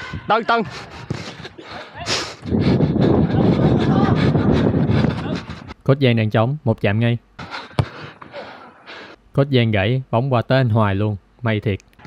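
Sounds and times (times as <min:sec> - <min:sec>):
wind buffeting microphone: 0:00.0 - 0:05.8.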